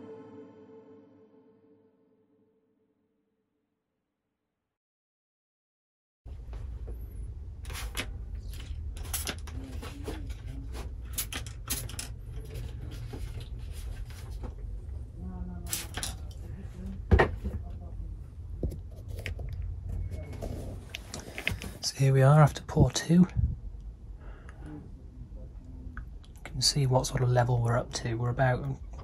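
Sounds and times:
steady low rumble: 22.4s - 26.6s.

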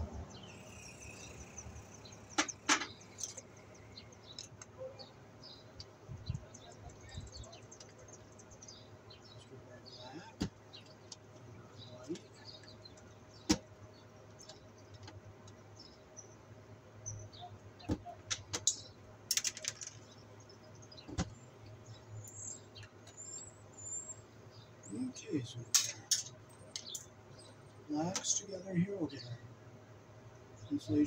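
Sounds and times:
birds chirping: 0.0s - 31.0s
pliers clicking on metal: 25.8s - 27.0s.

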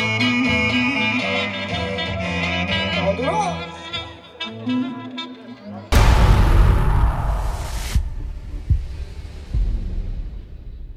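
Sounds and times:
low hum: 5.9s - 10.0s
heavy booming thumps: 5.9s - 10.9s.

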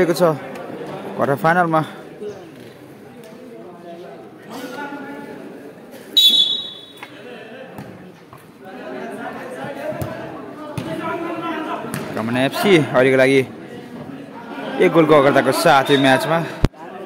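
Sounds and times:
players and spectators calling out: 4.4s - 17.0s
shrill whistle blast: 6.2s - 7.0s.

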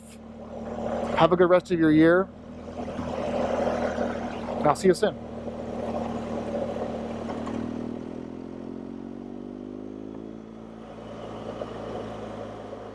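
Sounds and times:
motorcycle engine running: 0.0s - 12.9s.

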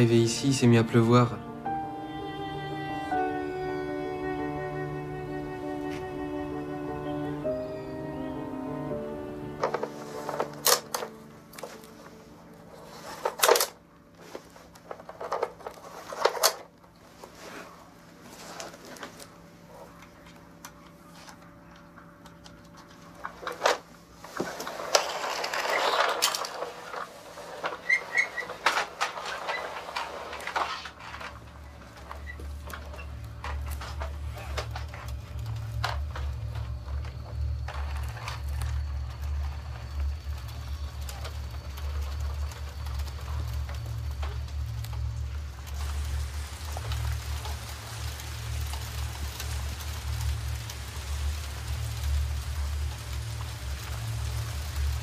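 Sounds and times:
low steady hum: 0.0s - 55.0s
toy trucks clacking and rattling: 12.9s - 16.8s, 22.3s - 55.0s.

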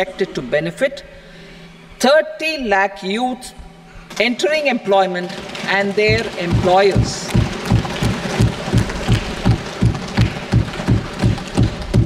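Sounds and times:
hands thumping wooden desks: 5.4s - 12.0s.

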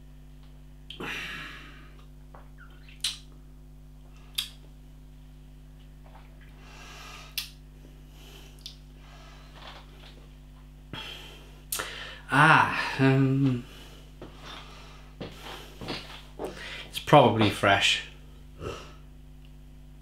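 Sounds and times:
low steady hum: 0.0s - 20.0s
wet mouth clicks and lip smacks: 2.7s - 3.3s, 4.3s - 4.6s, 8.6s - 8.8s
soft breaths: 13.6s - 17.0s.

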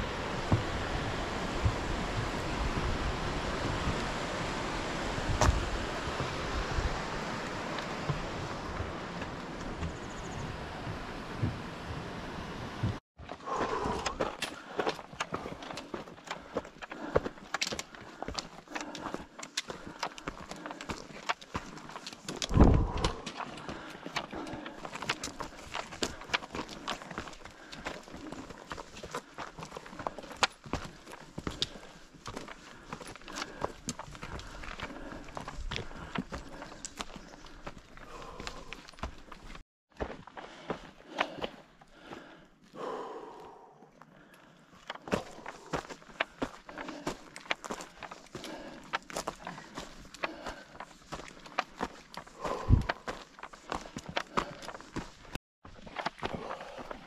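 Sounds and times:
footsteps on stony trail: 0.0s - 12.0s, 12.8s - 57.0s
trekking poles clicking on rock: 13.2s - 42.3s, 44.3s - 57.0s.

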